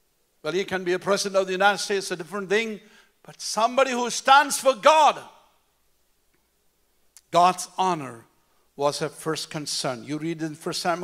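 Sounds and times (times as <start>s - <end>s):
man speaking: 0.4s - 5.4s, 7.2s - 11.0s.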